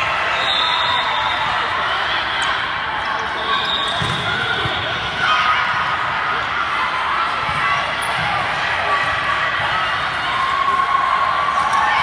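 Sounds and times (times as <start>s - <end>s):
babble of many voices: 0.0s - 12.0s.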